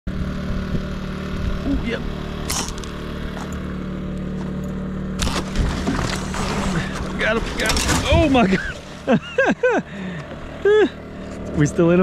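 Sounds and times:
small engine humming: 0.1s - 12.0s.

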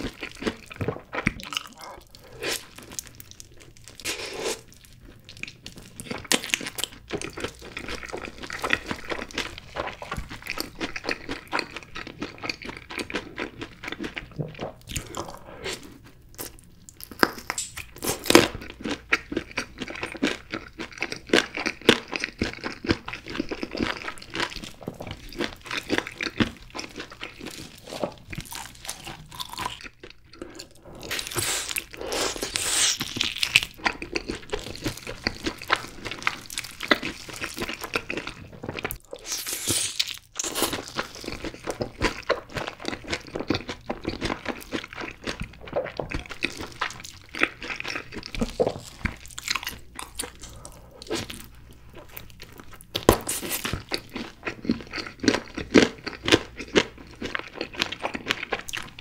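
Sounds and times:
crunching and chewing fried chicken: 0.0s - 59.0s.

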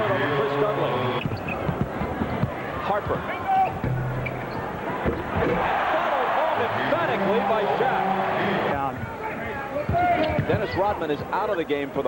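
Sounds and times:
crowd din of voices: 0.0s - 11.0s.

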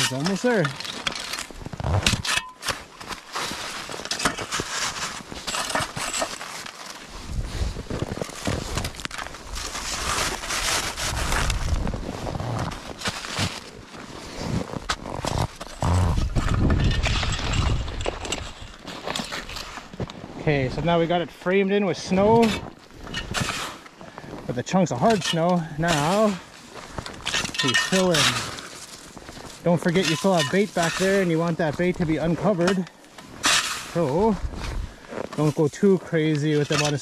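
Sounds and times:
snow crunching under shovel: 0.0s - 2.0s, 2.6s - 16.6s, 17.2s - 37.0s.

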